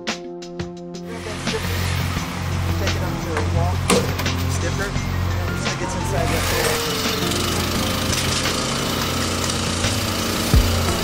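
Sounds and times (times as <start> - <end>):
background music with struck notes: 0.0 - 11.0
voices: 1.1 - 7.5.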